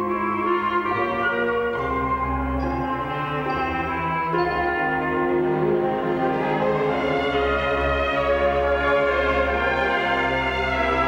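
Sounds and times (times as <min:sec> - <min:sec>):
solo clarinet: 0:00.0 - 0:11.0
symphony orchestra: 0:00.0 - 0:11.0.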